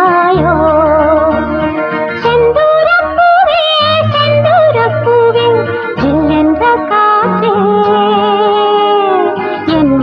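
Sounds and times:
woman singing ornamented notes: 0:00.0 - 0:10.0.

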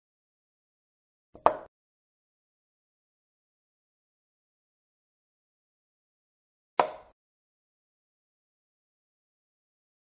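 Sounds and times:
chess piece move click: 0:06.8 - 0:07.1.

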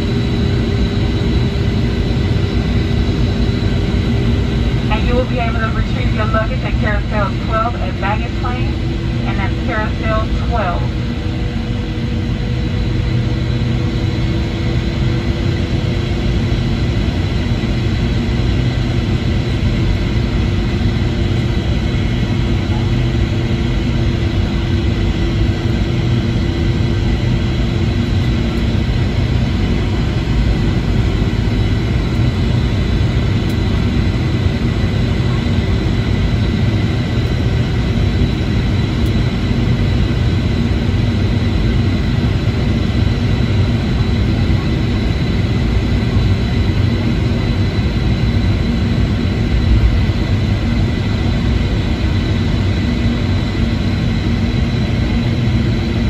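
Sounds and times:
jet engine roar with whining: 0:00.0 - 0:56.0
person speaking: 0:04.9 - 0:10.9.

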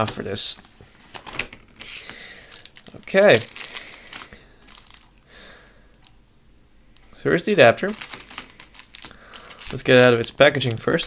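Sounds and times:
plastic packaging clicks and crinkles: 0:02.5 - 0:05.3, 0:07.8 - 0:11.0.

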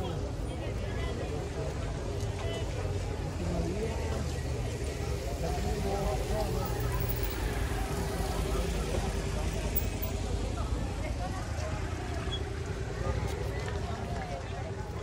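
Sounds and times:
traffic rumble: 0:00.0 - 0:15.0.

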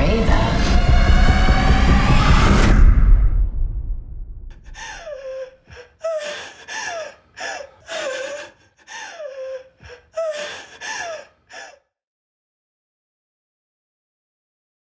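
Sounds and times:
person gasping for breath: 0:04.5 - 0:11.9.

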